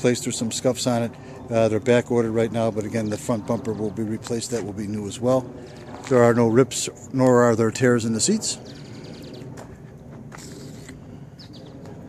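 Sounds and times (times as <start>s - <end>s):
low outdoor hum: 0.0s - 12.0s
footsteps on asphalt: 2.8s - 6.4s, 9.3s - 11.1s.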